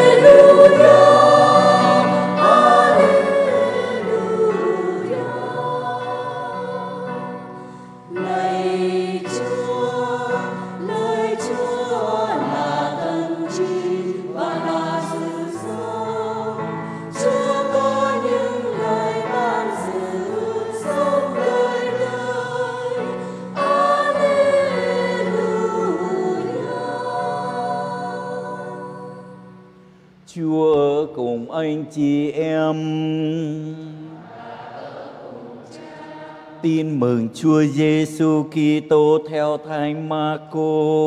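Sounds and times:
church choir singing: 0.0s - 41.0s.

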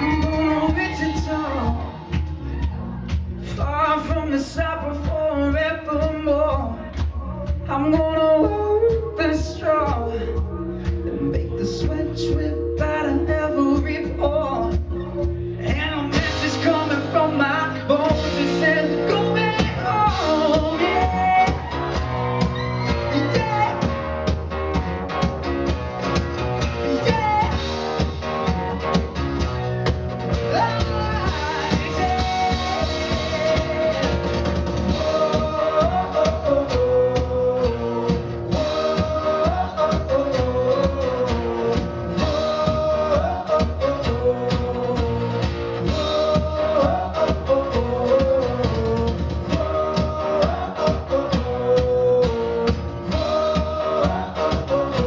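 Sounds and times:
man singing into microphone: 0.0s - 1.9s, 3.5s - 21.7s, 23.0s - 23.8s, 26.8s - 27.6s, 30.5s - 34.3s, 34.9s - 55.0s
live rock band playing: 0.0s - 55.0s.

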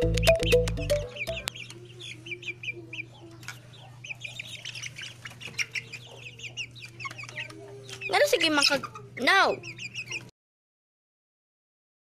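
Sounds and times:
chickens chirping: 0.0s - 10.3s.

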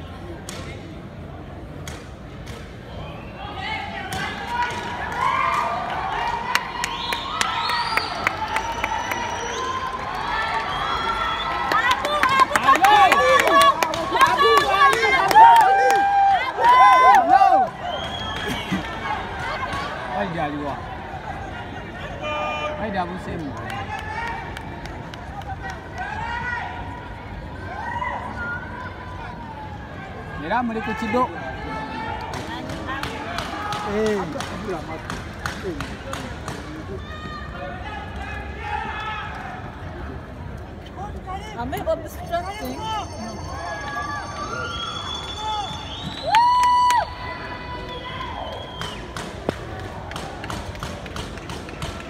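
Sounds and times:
open-air background noise: 0.0s - 52.0s
people shouting encouragement: 10.2s - 17.8s.

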